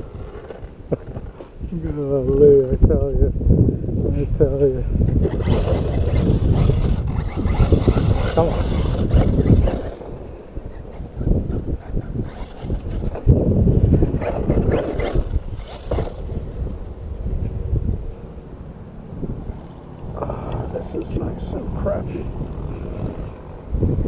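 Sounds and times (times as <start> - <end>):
rc truck driving on dirt: 0.0 - 3.3, 4.3 - 19.0
wind buffeting microphone: 0.0 - 24.0
short crackly bursts: 5.1 - 13.3, 13.9 - 17.0.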